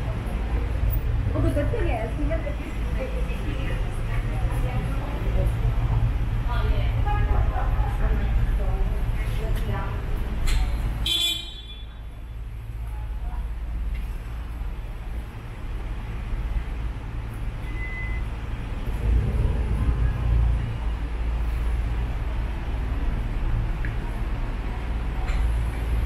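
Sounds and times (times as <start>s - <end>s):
street traffic: 0.0s - 26.0s
vehicle passing: 18.3s - 26.0s.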